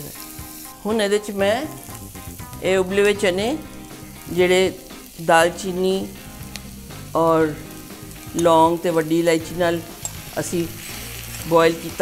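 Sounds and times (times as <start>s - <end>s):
vegetables sizzling in oil: 0.0s - 12.0s
person speaking: 0.8s - 1.8s, 2.6s - 6.2s, 7.1s - 10.8s, 11.4s - 12.0s.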